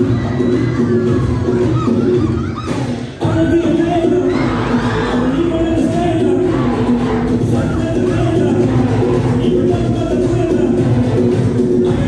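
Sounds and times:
audience cheering and shouting: 0.0 - 12.0
loud dance music over speakers: 0.0 - 12.0.

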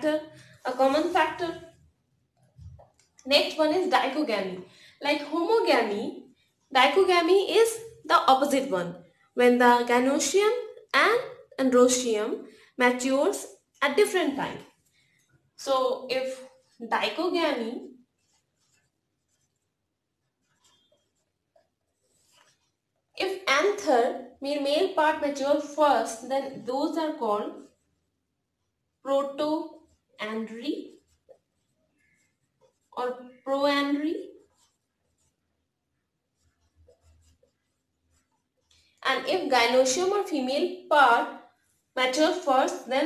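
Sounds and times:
marker pen on whiteboard: 0.0 - 43.0.

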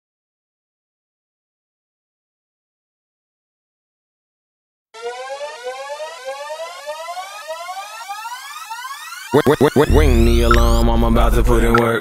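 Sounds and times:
synthesizer riser: 5.0 - 12.0.

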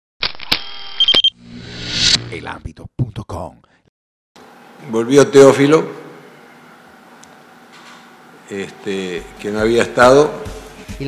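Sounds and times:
high beep: 0.6 - 1.4.

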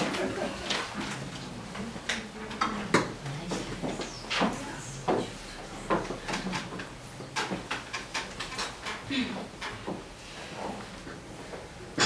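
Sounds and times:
faint murmuring voices: 0.0 - 7.8.

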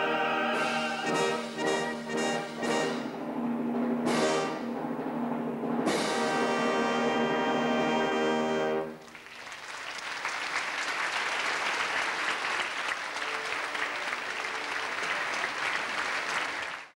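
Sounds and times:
audience applauding: 9.0 - 17.0.

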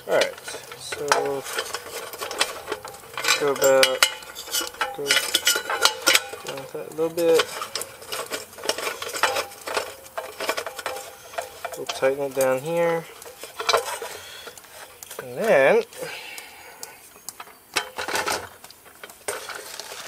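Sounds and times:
metal clicks and scrapes: 0.0 - 20.0.

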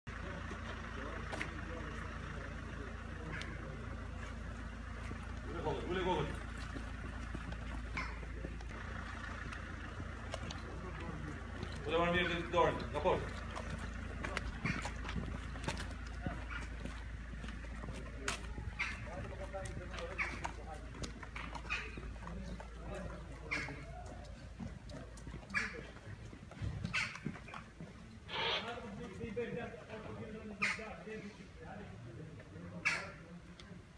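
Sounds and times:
low outdoor rumble: 0.1 - 33.9
voices in background: 0.1 - 33.9
footsteps on stone paving: 3.2 - 28.2.

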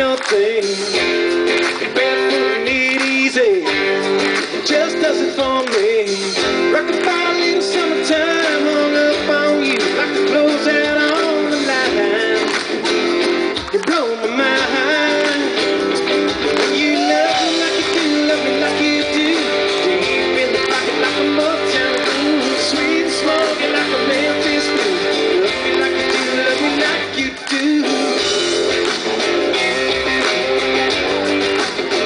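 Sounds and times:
live pop-rock band: 0.0 - 32.0.

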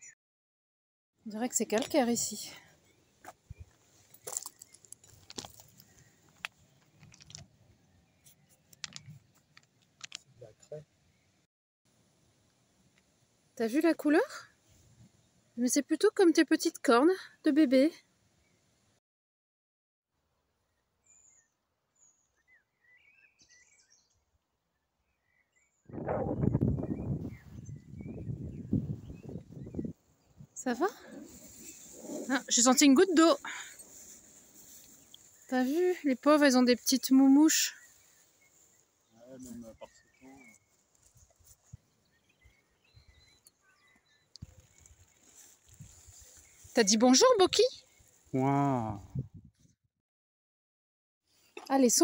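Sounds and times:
faint birdsong chirps: 1.2 - 11.5, 17.4 - 19.0, 20.5 - 48.6
footsteps on gravel: 3.2 - 7.5
wind buffeting microphone: 25.9 - 32.6, 49.0 - 49.6.

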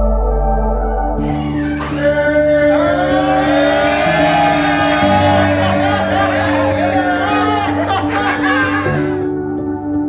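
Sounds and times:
sustained low notes: 0.0 - 9.5
held high note: 1.2 - 9.4.

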